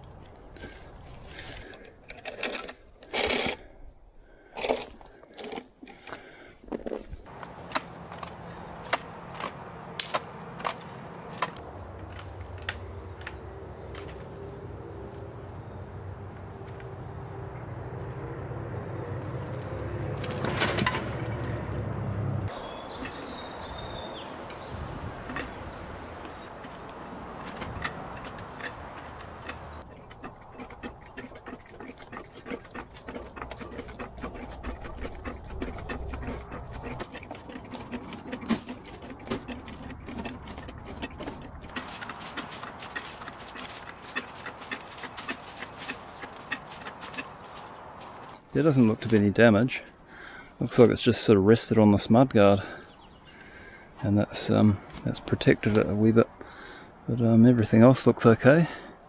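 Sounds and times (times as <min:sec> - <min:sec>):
engine hum: 0:07.2 - 0:57.2
sharp mechanical clicks and knocks: 0:26.5 - 0:47.4.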